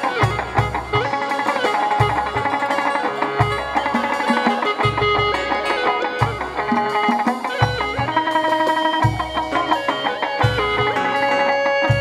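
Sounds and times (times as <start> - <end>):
low drum beats: 0.0 - 12.0
plucked lute melody: 0.0 - 12.0.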